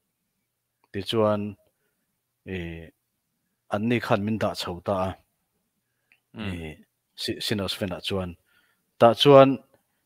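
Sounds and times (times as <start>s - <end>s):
man talking over video call: 0.8s - 1.8s, 2.4s - 5.4s, 6.2s - 9.9s.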